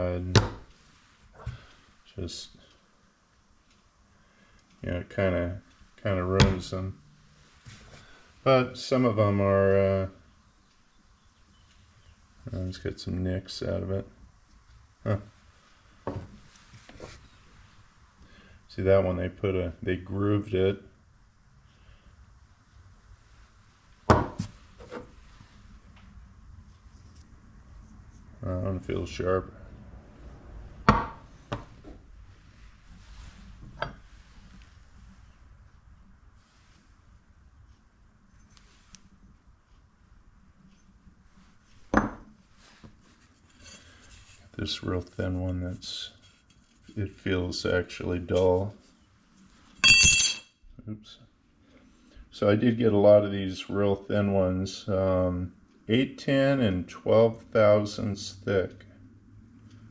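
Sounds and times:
metal saw disc clinking: 49.8 - 50.5
bright metallic ring: 49.8 - 50.6.

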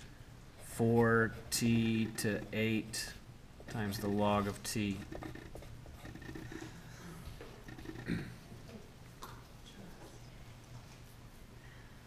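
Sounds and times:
steady low hum: 0.0 - 12.0
hand tapping paper: 3.6 - 6.8, 7.7 - 8.2.

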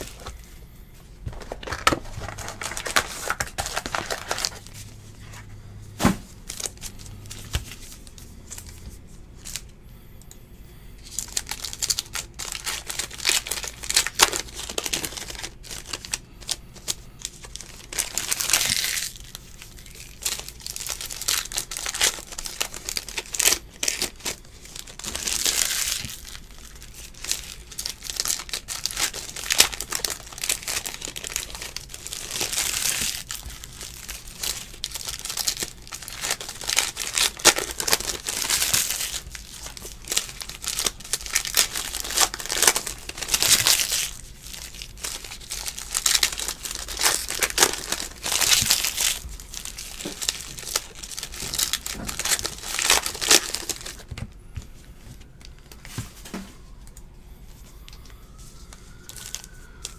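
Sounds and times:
foil wrappers crinkling and tearing: 0.0 - 0.5, 1.3 - 5.0, 6.4 - 9.7, 11.0 - 54.3, 58.0 - 59.9.

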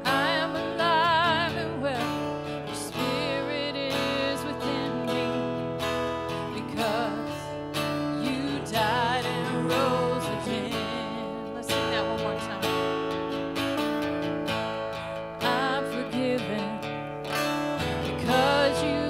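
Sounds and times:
woman singing with vibrato: 0.0 - 13.2, 14.1 - 19.0
strummed acoustic guitar: 0.0 - 19.0.

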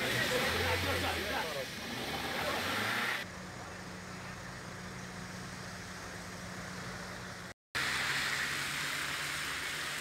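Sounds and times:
street noise with voices: 0.0 - 5.0
idling vehicle traffic hum: 0.0 - 10.0.

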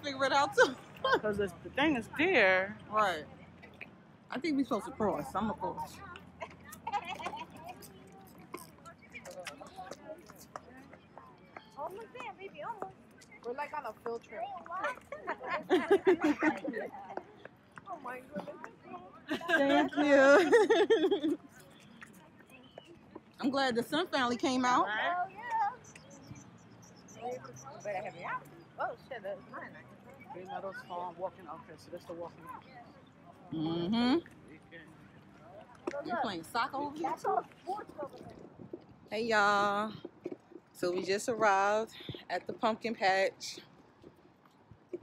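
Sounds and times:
distant people talking: 0.0 - 42.4
murmur of voices: 0.0 - 44.2.

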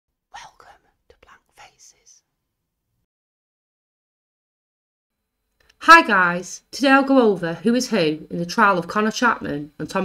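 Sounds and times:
person whispering: 0.3 - 2.2.

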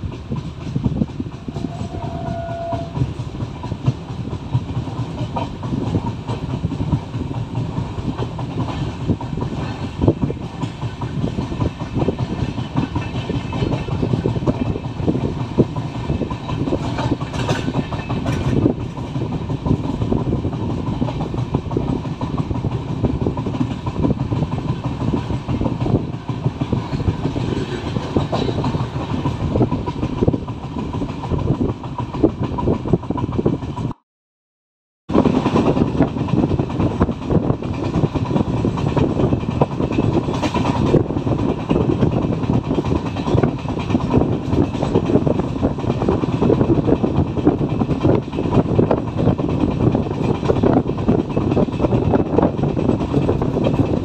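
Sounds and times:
train running at speed: 0.0 - 34.0, 35.1 - 54.0
wheels rattling over track: 0.0 - 34.0, 35.1 - 54.0.

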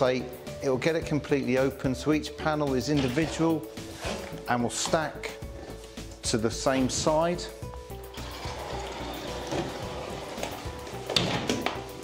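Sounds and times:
glass door rolling on track: 8.1 - 11.7.

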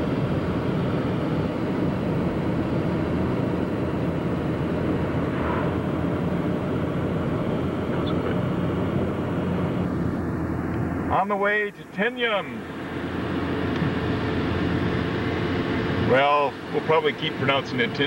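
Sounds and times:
low hum: 0.0 - 11.1
car driving at road speed: 0.0 - 18.0.

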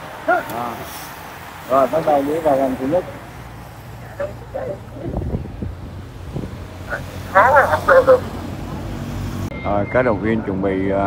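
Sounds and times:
motorcycle engines rumbling: 0.0 - 11.0
wind on microphone: 5.0 - 6.8.

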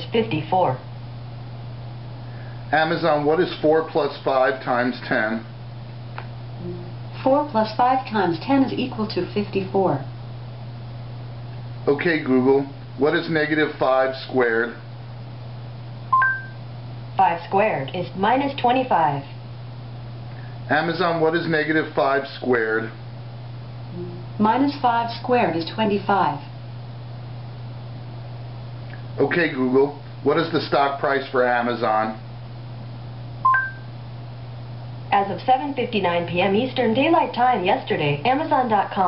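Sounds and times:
steady low hum: 0.0 - 39.0
smart speaker two-note chime: 16.2 - 16.6, 33.5 - 33.9.

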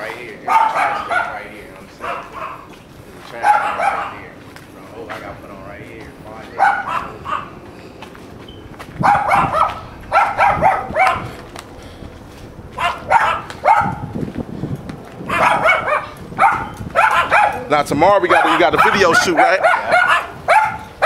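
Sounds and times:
dog barking: 0.4 - 4.3, 6.5 - 7.6, 9.0 - 11.3, 12.8 - 14.1, 15.3 - 21.0.

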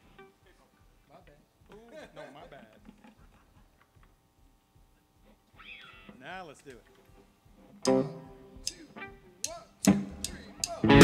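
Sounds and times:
stray stage sounds: 0.0 - 11.0.

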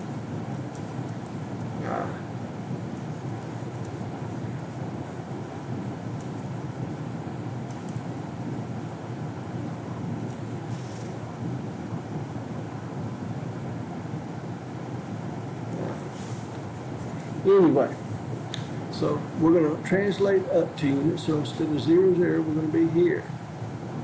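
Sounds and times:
low rumbling background noise: 0.0 - 24.0.

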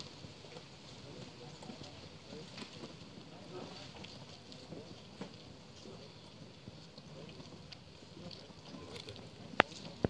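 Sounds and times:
boots marching on paved road: 0.0 - 10.0
faint voices: 0.0 - 10.0.

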